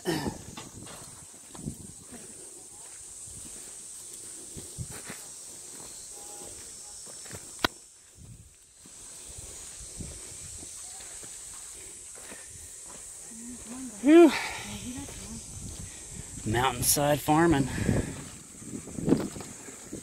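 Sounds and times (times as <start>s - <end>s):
footsteps on dirt paths: 0.0s - 20.0s
steady high hiss: 0.0s - 20.0s.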